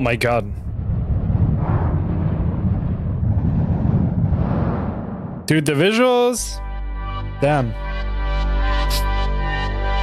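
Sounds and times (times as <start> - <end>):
deep rumble: 0.0 - 5.5
hissing roar: 0.7 - 5.4.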